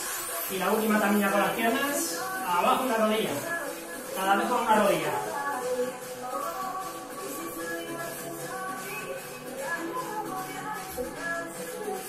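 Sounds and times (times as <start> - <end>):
workout background music: 0.0 - 12.0.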